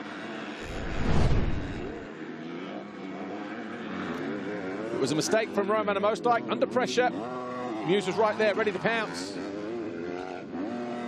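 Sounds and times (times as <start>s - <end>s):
motocross bike engines revving: 0.0s - 11.0s
loud whoosh with deep rumble: 0.6s - 2.1s.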